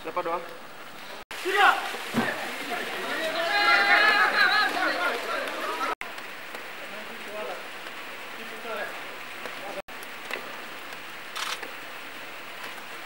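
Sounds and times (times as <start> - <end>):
steady outdoor hiss: 0.0 - 13.0
players calling out: 1.3 - 6.0.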